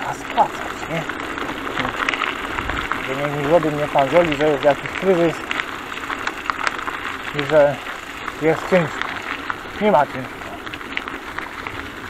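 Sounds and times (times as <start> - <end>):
low ride rumble: 0.0 - 5.7
bicycle tyres crunching gravel: 0.0 - 12.0.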